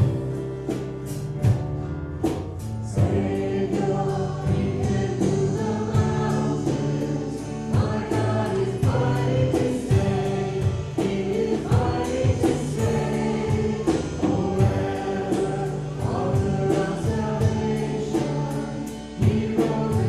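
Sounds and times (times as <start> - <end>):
voices singing worship song: 0.0 - 1.5, 2.6 - 20.0
church band: 0.0 - 20.0
drums steady beat: 0.0 - 20.0.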